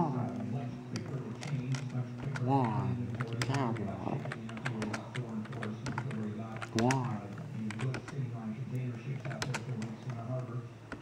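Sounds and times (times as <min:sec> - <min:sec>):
muffled voice: 0:00.0 - 0:11.0
quick irregular clicks: 0:03.1 - 0:11.0.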